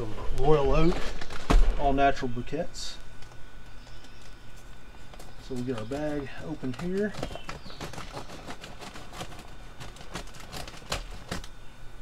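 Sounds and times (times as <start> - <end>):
charcoal clicks and crackles: 0.3 - 1.6, 2.9 - 11.6
paper bag crinkling: 5.1 - 11.5.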